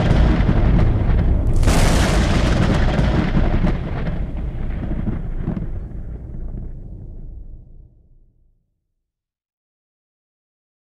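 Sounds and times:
thunder rumbling: 0.0 - 8.2.

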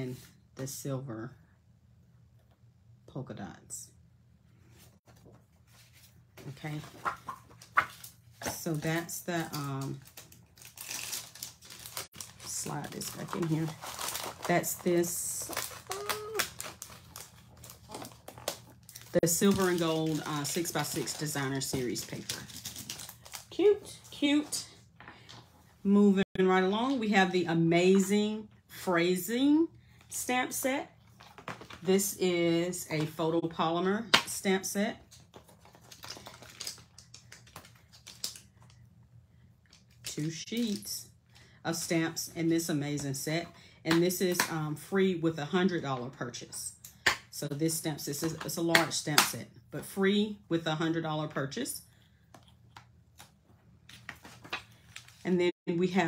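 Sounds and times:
cellophane crinkling: 9.3 - 23.6, 35.3 - 38.7
plastic clicks and crinkles: 35.1 - 38.8.

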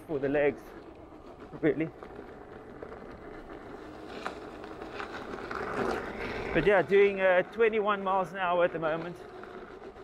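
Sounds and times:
tyre and riding noise: 0.0 - 10.0.

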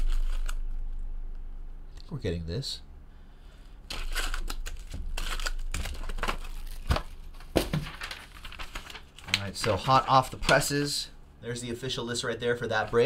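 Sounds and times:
foil packs crinkling: 0.0 - 0.8, 3.9 - 11.0
paper handled: 3.9 - 10.8.

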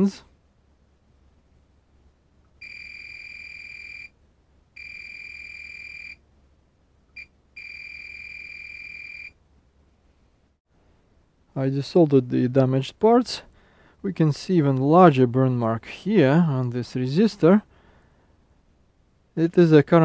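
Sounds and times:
multimeter continuity beeps: 2.6 - 4.1, 4.8 - 6.2, 7.2 - 9.3.

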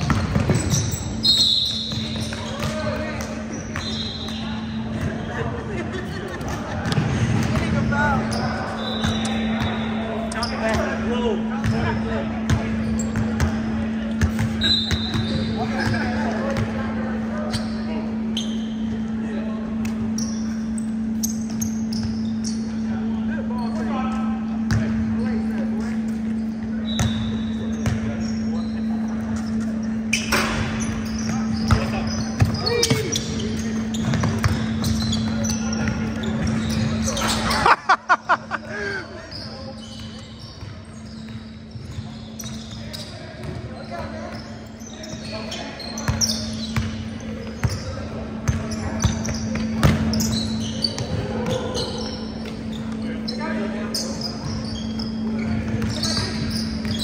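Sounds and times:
basketball bouncing: 0.0 - 0.9, 34.0 - 36.6, 48.4 - 50.2
sneaker squeaks: 0.0 - 57.0.

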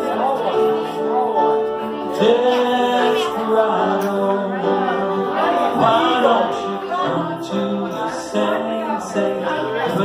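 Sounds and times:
grand piano: 0.0 - 10.0
person singing: 1.0 - 10.0.

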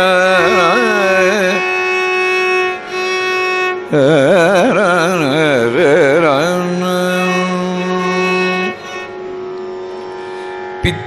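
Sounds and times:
man singing: 0.0 - 2.0, 3.9 - 8.8.

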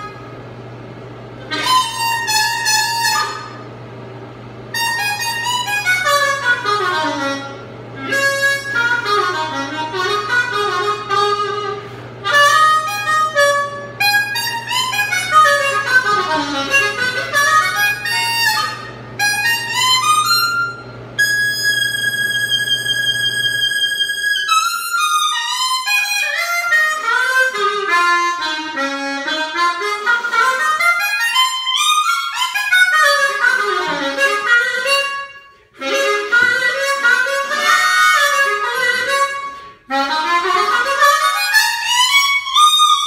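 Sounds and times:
blues harmonica: 0.0 - 0.3, 1.2 - 3.7, 4.6 - 43.0.

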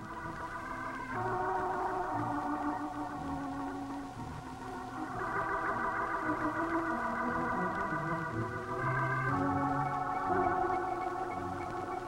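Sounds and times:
slow organ chords: 0.0 - 12.0.

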